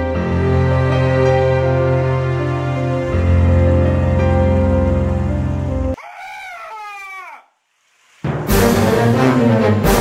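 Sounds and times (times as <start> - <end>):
high-pitched whining cry: 6.0 - 7.5.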